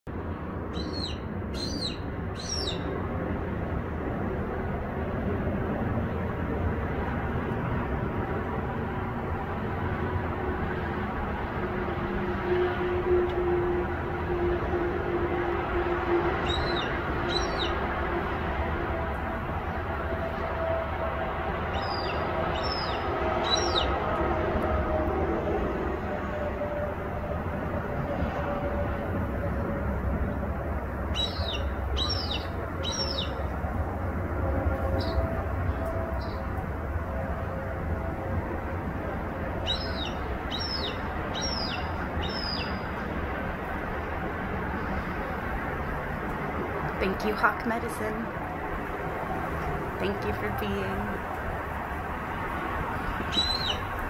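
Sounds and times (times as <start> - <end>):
bird calling: 0.7 - 2.9, 16.4 - 17.8, 21.7 - 24.0, 31.1 - 33.5, 35.0 - 35.2, 39.6 - 42.9, 53.0 - 54.0.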